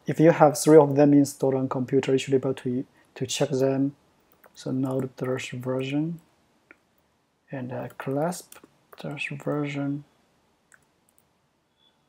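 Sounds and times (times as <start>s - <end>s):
person speaking: 0.0s - 6.8s, 7.5s - 10.1s.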